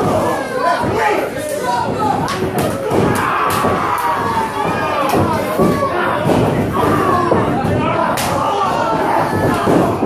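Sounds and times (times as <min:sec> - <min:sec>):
crowd shouting: 0:00.0 - 0:10.0
thuds of wrestlers striking: 0:00.0 - 0:10.0.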